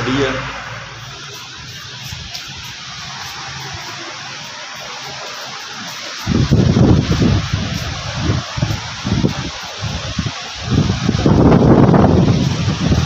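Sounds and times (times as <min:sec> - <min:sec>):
river rapids rushing: 0:00.0 - 0:13.0
wind buffeting microphone: 0:06.2 - 0:13.0.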